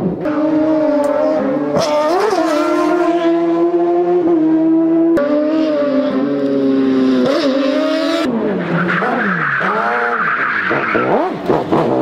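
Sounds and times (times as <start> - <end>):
racing car engine at high revs: 0.0 - 12.0.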